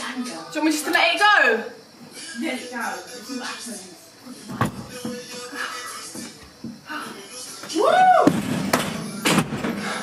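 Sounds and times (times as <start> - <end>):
woman shouting woo: 7.8 - 8.3.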